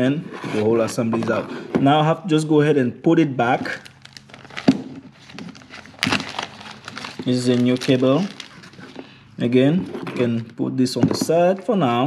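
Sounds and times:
plastic bag crinkling: 3.6 - 9.3.

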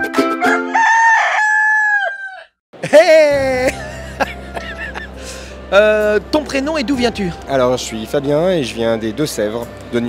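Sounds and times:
rooster crowing: 0.4 - 2.6.

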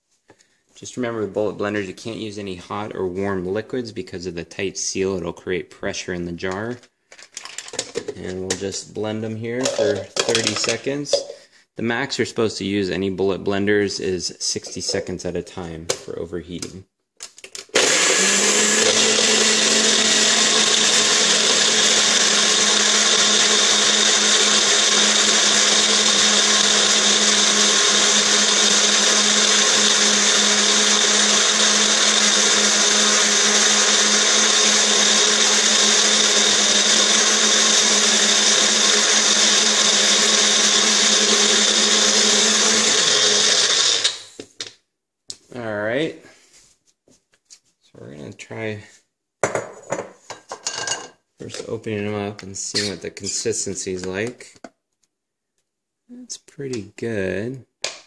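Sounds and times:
blenders running: 9.6 - 10.6, 17.8 - 44.4.

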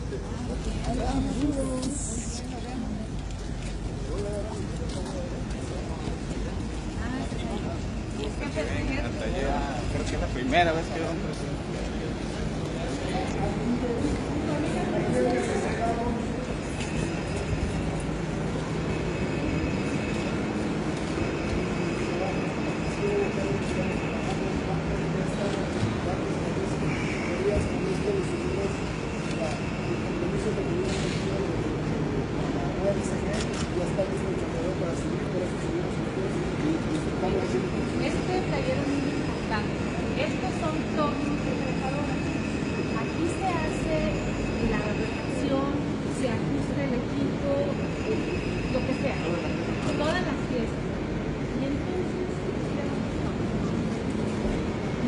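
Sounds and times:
faint indistinct voices: 0.0 - 55.0
low background noise: 0.0 - 55.0.

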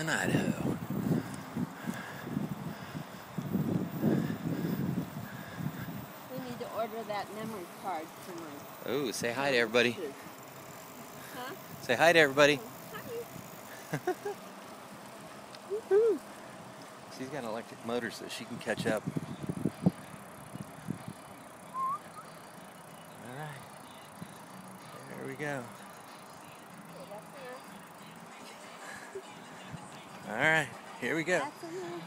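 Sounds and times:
wind and tyre noise: 0.0 - 27.3
low background noise: 0.0 - 32.0.

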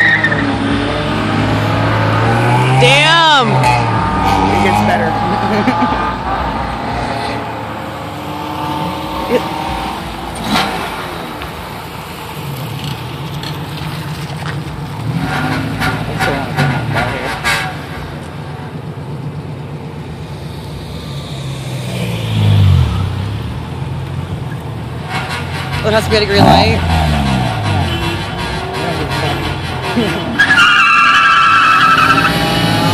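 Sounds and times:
car engines revving: 0.0 - 32.9.

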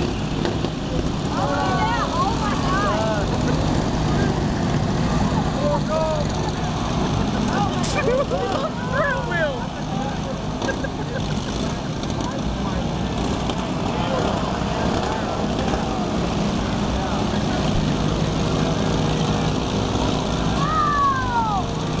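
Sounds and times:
crowd voices: 0.0 - 22.0
riding lawn mower engines droning: 0.0 - 22.0
falling shout: 20.6 - 21.7.

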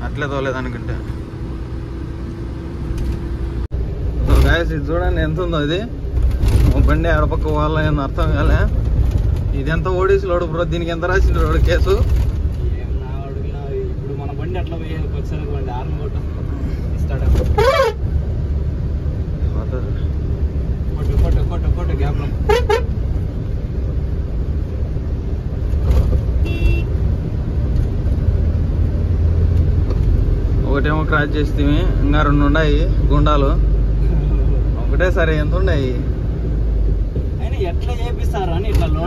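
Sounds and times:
truck horn toots: 17.5 - 18.1, 22.4 - 23.0, 26.4 - 27.0.

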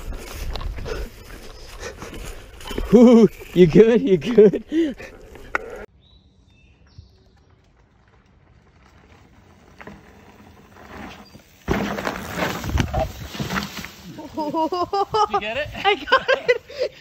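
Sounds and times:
mountain bike on dirt trail: 0.0 - 17.0
bike crash scraping on dirt: 7.9 - 14.5.

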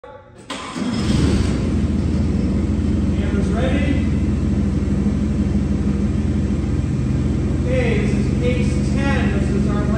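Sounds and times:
forklift engine running: 0.4 - 9.9.

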